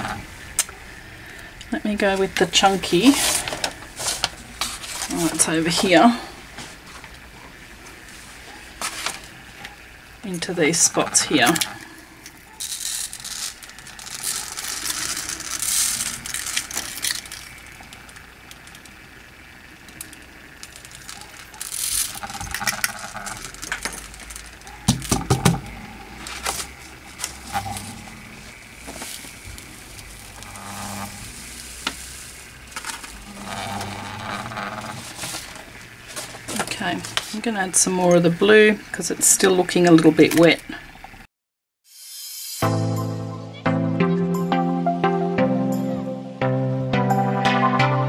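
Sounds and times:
glitter falling onto paper: 12.6s - 19.0s, 19.9s - 25.6s, 28.4s - 30.4s, 31.0s - 33.2s.

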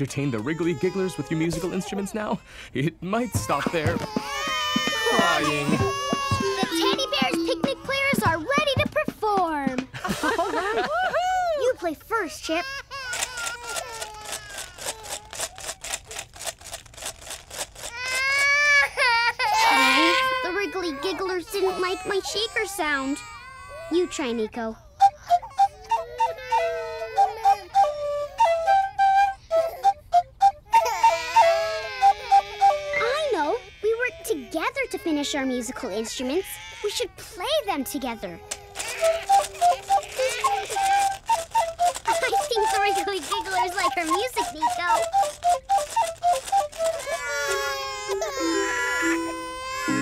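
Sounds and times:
cartoon babies crying: 0.0s - 2.4s, 3.1s - 9.1s, 10.9s - 16.2s, 17.8s - 50.0s
bamboo pan pipes playing a tune: 4.2s - 9.0s, 25.0s - 33.1s, 38.8s - 50.0s
held musical note: 4.7s - 9.2s, 39.0s - 50.0s.

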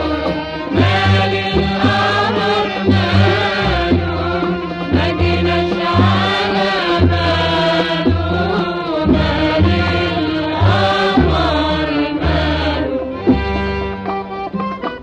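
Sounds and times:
steady low beat: 0.0s - 14.8s.

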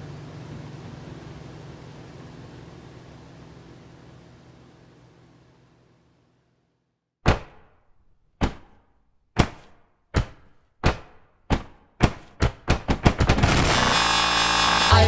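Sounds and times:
sharp electronic percussive hits: 10.2s - 15.0s.

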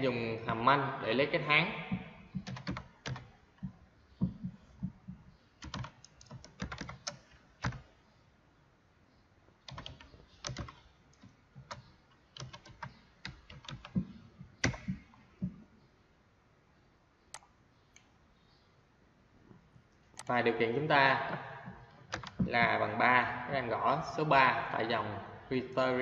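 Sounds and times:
computer keyboard typing: 1.9s - 7.9s, 9.6s - 15.6s, 21.6s - 22.7s.

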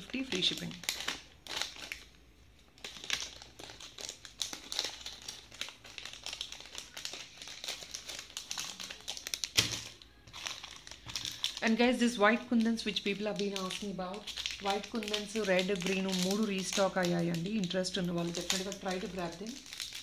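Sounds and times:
plastic packets crinkling: 0.0s - 20.0s.

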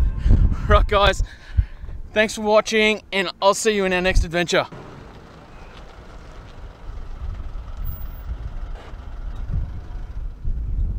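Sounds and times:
wind buffeting microphone: 0.0s - 2.2s, 4.0s - 10.9s.

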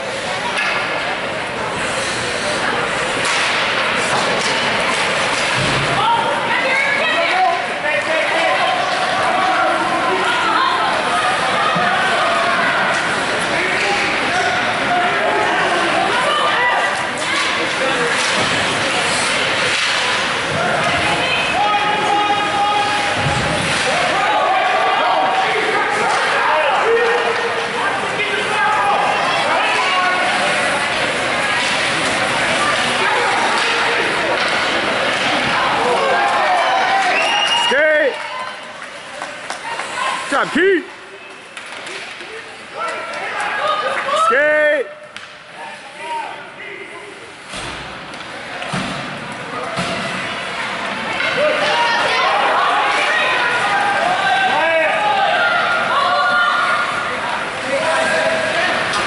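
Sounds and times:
spectators talking and calling out: 0.0s - 59.0s.

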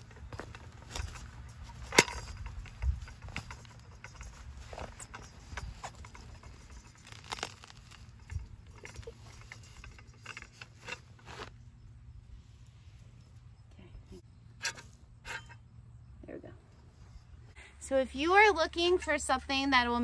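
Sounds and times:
weed puller scraping in soil: 0.0s - 11.8s.

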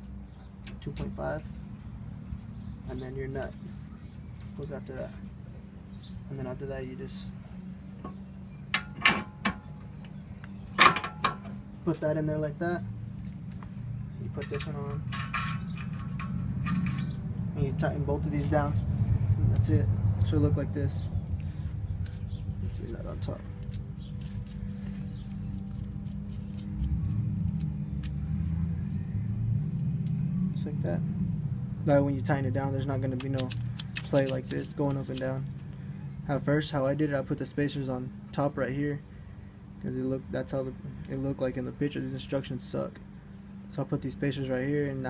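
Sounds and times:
faint light clicks of metal parts: 0.0s - 2.7s, 13.2s - 17.2s, 22.9s - 27.0s, 33.1s - 35.8s
steady low hum: 0.0s - 45.0s
small metal parts clicking: 23.6s - 28.2s.

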